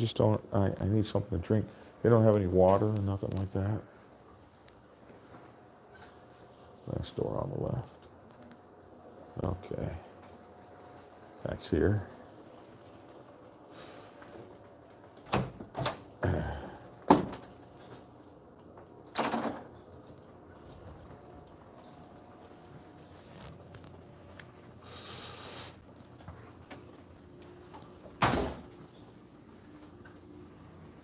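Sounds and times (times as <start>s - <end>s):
heavy door thud: 28.2s - 28.7s.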